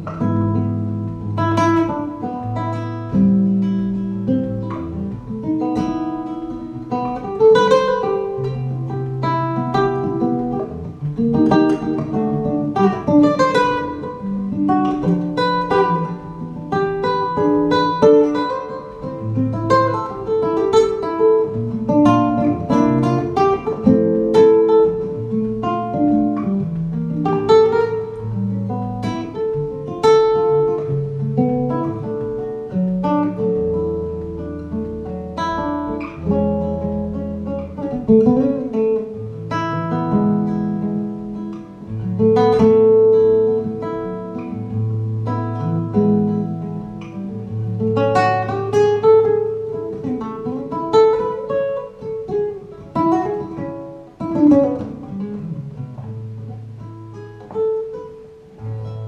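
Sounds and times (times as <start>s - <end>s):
nylon-string guitar improvising: 0.0s - 59.0s.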